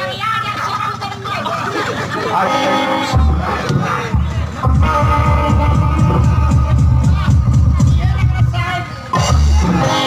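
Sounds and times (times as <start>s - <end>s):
crowd noise: 0.0s - 10.0s
dance music with heavy bass drum: 3.2s - 10.0s.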